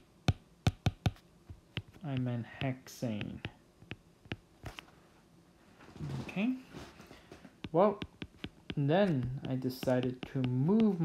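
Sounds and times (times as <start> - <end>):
stylus tapping on glass screen: 0.3 - 1.2, 7.6 - 10.9.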